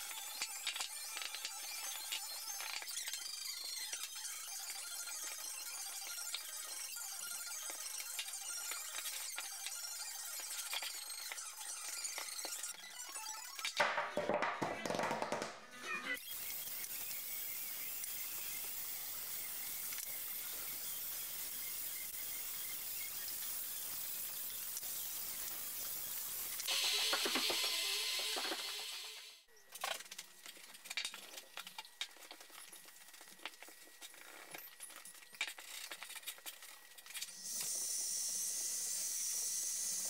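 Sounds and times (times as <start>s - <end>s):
wooden parts knocking: 13.6s - 15.6s, 26.7s - 28.9s
heat gun blowing hot air: 16.3s - 29.2s.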